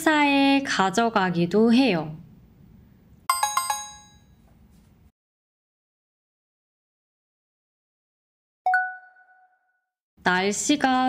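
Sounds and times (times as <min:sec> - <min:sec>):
bright bell-like chime: 0:03.3 - 0:04.5.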